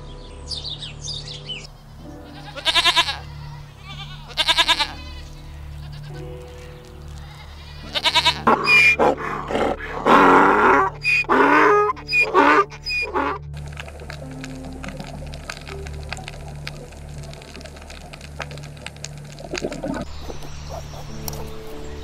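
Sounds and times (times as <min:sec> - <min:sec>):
ambient music drone: 0:00.0 - 0:22.0
wild ass braying: 0:01.6 - 0:22.0
faint clicks: 0:13.0 - 0:21.8.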